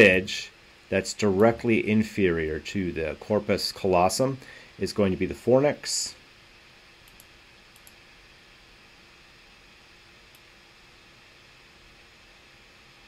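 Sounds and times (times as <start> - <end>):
room hiss: 0.0 - 13.0
computer mouse clicks: 7.0 - 8.0, 10.3 - 10.5.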